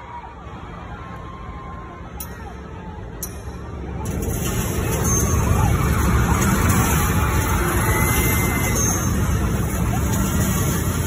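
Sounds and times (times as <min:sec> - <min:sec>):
crowd screaming and cheering: 0:00.0 - 0:11.0.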